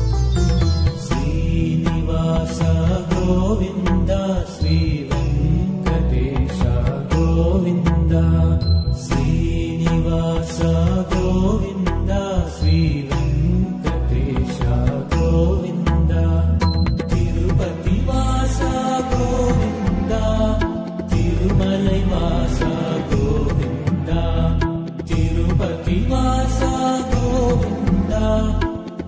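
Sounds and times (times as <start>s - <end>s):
chant sung over instruments: 17.6s - 28.6s.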